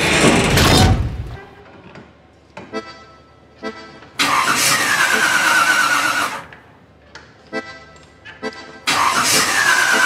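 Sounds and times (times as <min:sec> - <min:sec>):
car engine starting and revving: 0:04.2 - 0:06.4, 0:08.9 - 0:10.0.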